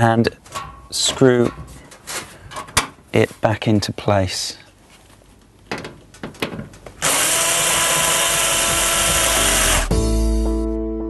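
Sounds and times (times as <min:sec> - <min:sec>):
cordless screwdriver motor running: 0:07.0 - 0:09.9.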